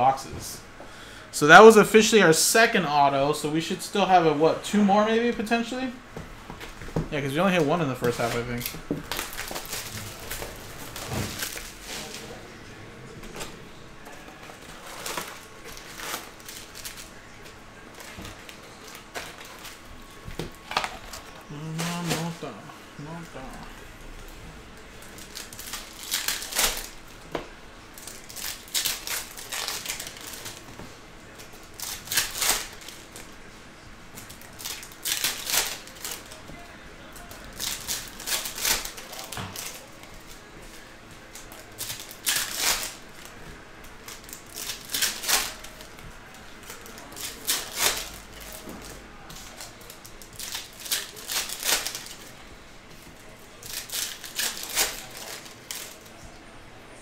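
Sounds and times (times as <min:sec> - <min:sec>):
foil packs tearing: 0:08.0 - 0:12.3, 0:14.6 - 0:17.4, 0:20.8 - 0:23.5, 0:25.1 - 0:27.0, 0:28.0 - 0:30.7, 0:31.4 - 0:33.2, 0:34.2 - 0:36.4, 0:37.2 - 0:40.4, 0:41.2 - 0:52.3, 0:53.5 - 0:56.1.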